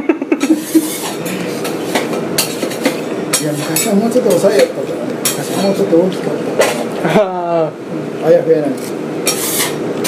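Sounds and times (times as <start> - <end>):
griddle hissing: 0.4 - 10.0.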